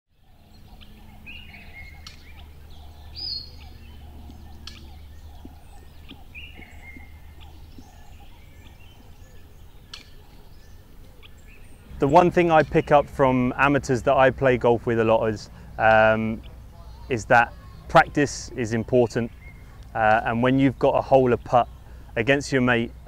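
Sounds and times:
birds chirping and calling: 0:00.1 - 0:23.0
low steady rumble: 0:00.2 - 0:23.0.

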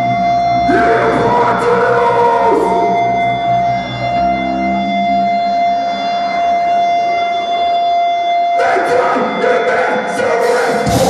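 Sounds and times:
heavy metal band playing: 0:00.0 - 0:05.4, 0:08.4 - 0:11.0
electric guitar ringing tone: 0:00.0 - 0:11.0.

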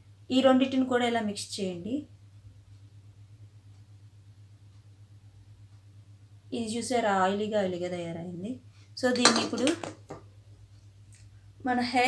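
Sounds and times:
woman's voice: 0:00.3 - 0:02.1, 0:06.5 - 0:10.0, 0:11.6 - 0:12.0.

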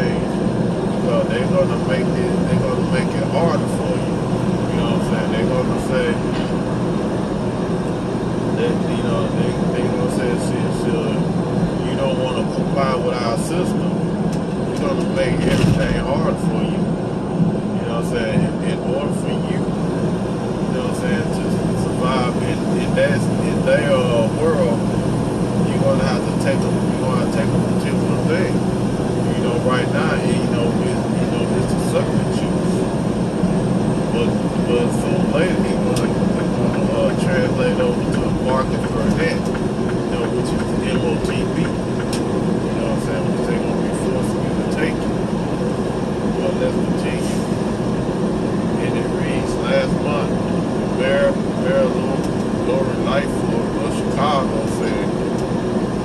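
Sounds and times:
vehicle road and engine noise: 0:00.0 - 0:56.0
faint voices: 0:01.0 - 0:06.6, 0:08.6 - 0:14.0, 0:14.7 - 0:16.9, 0:17.8 - 0:19.7, 0:20.7 - 0:24.8, 0:25.6 - 0:28.6, 0:29.3 - 0:32.8, 0:34.1 - 0:45.2, 0:46.3 - 0:47.6, 0:48.6 - 0:55.2.

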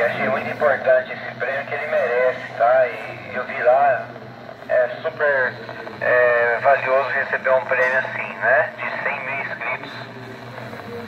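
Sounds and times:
man talking over radio loudspeaker: 0:00.0 - 0:04.1, 0:04.7 - 0:10.2
steady low hum: 0:00.0 - 0:11.0.

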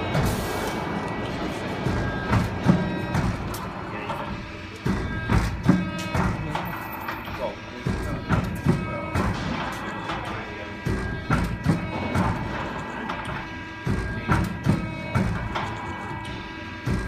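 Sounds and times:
die-cutting press thumping: 0:00.0 - 0:17.0
steady machine hum: 0:00.0 - 0:17.0.

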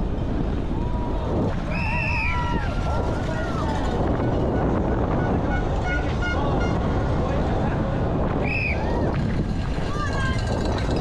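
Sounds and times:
bike tyre noise on dirt: 0:00.0 - 0:11.0
rushing wind: 0:00.0 - 0:11.0
spectators shouting: 0:00.7 - 0:04.2.

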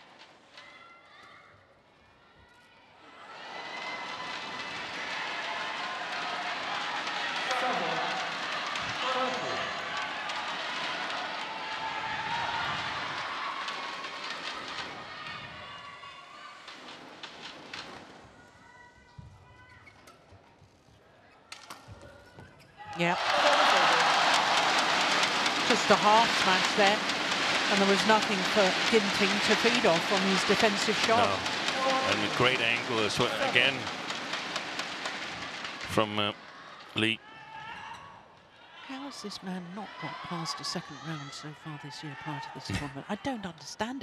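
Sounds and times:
crowd cheering: 0:02.9 - 0:18.7, 0:22.8 - 0:43.5.

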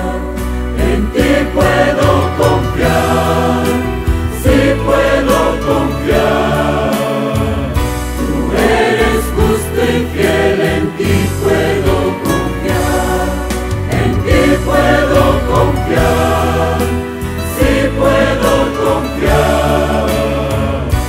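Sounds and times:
keyboard bass notes: 0:00.0 - 0:21.0
mixed choir singing in parts: 0:00.0 - 0:21.0.

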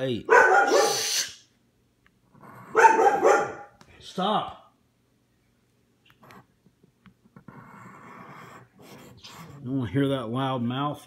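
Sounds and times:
dog barking: 0:00.2 - 0:01.2, 0:02.6 - 0:03.8.

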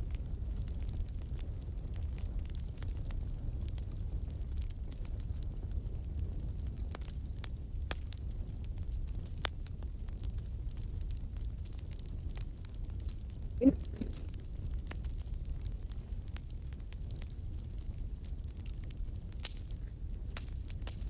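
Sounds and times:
sharp clicks and crackles: 0:18.4 - 0:21.0.

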